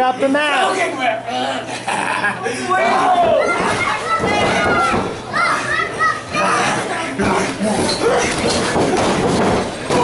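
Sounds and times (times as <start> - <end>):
children shouting: 2.6 - 8.4.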